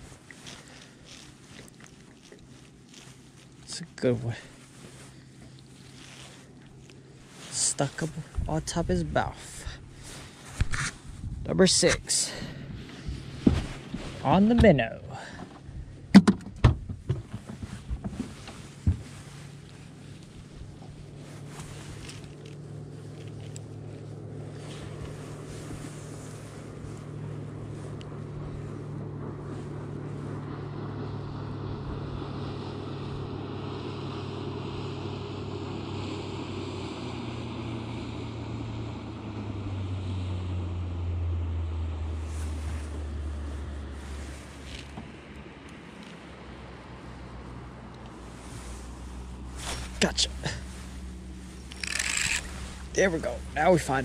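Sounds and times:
wind on microphone: 0:10.6 - 0:11.5
electric trolling motor humming: 0:17.9 - 0:41.7, 0:50.6 - 0:54.0.

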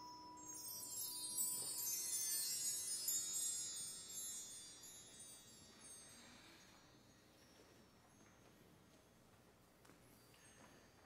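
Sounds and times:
high chimes ringing: 0:00.0 - 0:08.9.

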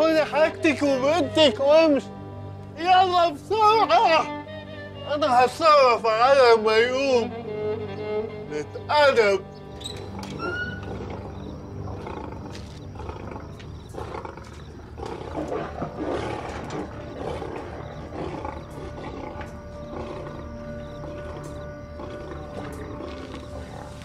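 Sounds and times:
dramatic background music: 0:00.0 - 0:24.0
lion cub growling: 0:09.7 - 0:24.0.

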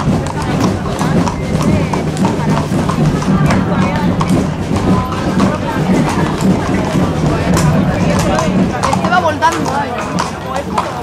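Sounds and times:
crowd chatter: 0:00.0 - 0:11.0
hooves clip-clopping on stones: 0:00.0 - 0:11.0.

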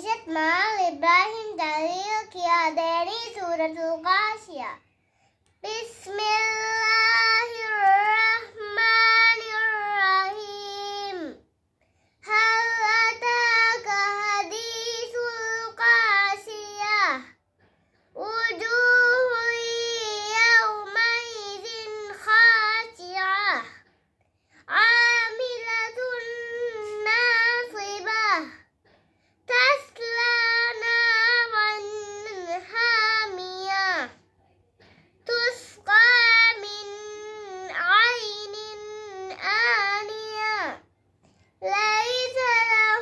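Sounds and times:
girl chanting recitation: 0:00.0 - 0:04.8, 0:05.6 - 0:11.4, 0:12.2 - 0:17.4, 0:18.2 - 0:23.8, 0:24.6 - 0:28.7, 0:29.5 - 0:34.2, 0:35.2 - 0:40.8, 0:41.6 - 0:43.0.

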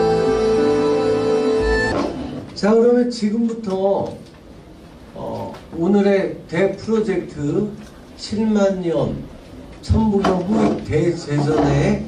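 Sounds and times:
man speaking: 0:05.2 - 0:12.0.

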